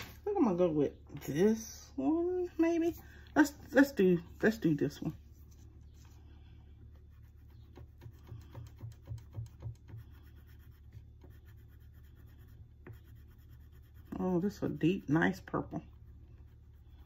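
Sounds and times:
crayon scratching on paper: 0:06.9 - 0:17.0.

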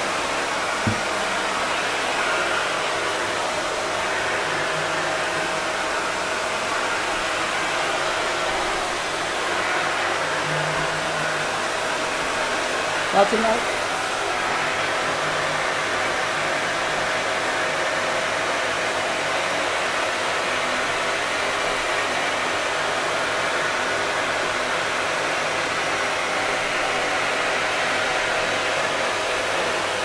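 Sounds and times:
vacuum cleaner running: 0:00.0 - 0:30.0.

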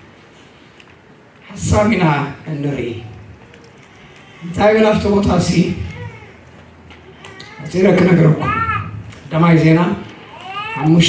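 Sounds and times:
man preaching into microphone: 0:01.4 - 0:03.3, 0:04.4 - 0:06.1, 0:07.6 - 0:11.0.

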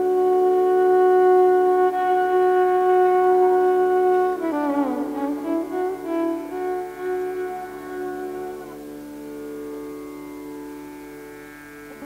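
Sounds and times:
violin holding long soft note: 0:00.0 - 0:12.0.

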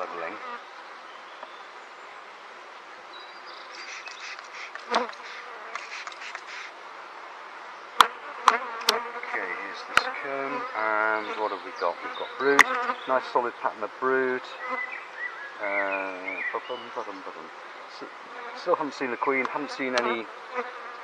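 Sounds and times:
honeybees buzzing: 0:00.0 - 0:01.8, 0:02.8 - 0:21.0
sharp clicks: 0:03.8 - 0:06.7, 0:08.0 - 0:09.0.

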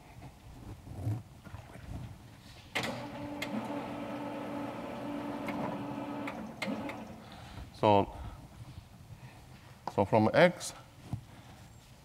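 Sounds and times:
sliding panels whirring in tracks: 0:02.8 - 0:07.0.

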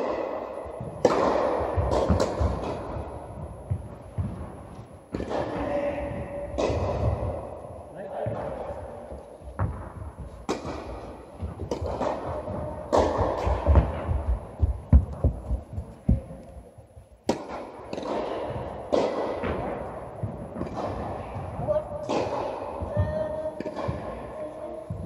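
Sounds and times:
tennis ball bouncing: 0:00.0 - 0:07.6, 0:08.2 - 0:16.6, 0:17.2 - 0:25.0
racket hitting tennis ball: 0:00.0 - 0:16.4, 0:17.2 - 0:25.0.

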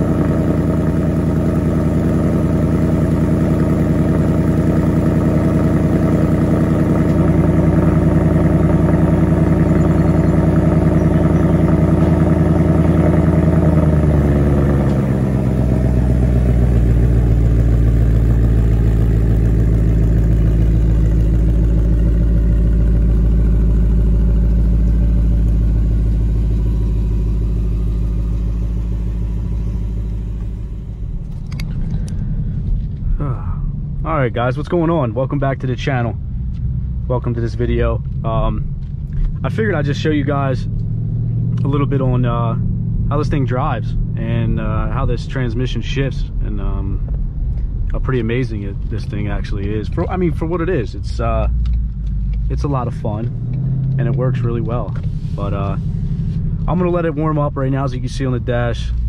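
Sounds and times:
car engine idling: 0:00.0 - 0:59.0.

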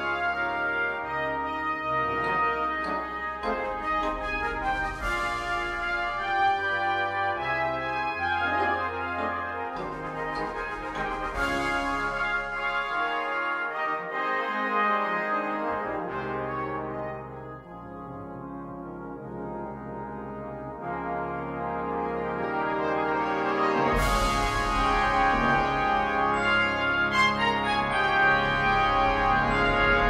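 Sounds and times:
brass band playing: 0:00.0 - 0:30.0.

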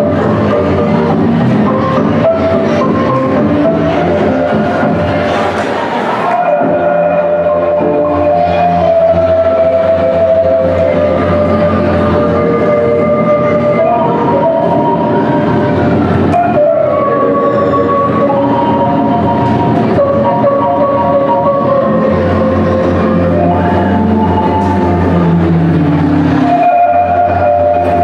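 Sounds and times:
marimba folk dance music: 0:00.0 - 0:28.0.

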